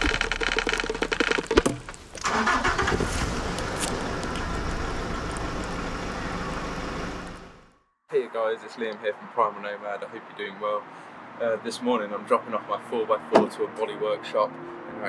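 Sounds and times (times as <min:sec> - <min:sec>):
car engine starting: 0:02.0 - 0:07.8.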